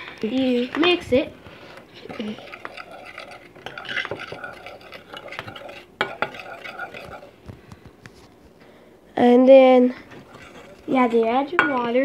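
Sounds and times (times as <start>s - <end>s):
metal spoon stirring in bowl: 0.0s - 7.4s, 10.1s - 12.0s
spoon clinking against bowl: 2.1s - 7.3s.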